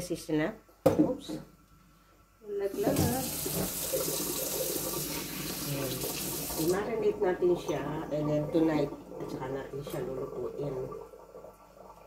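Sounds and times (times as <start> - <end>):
tap water splashing into sink: 2.8 - 6.9.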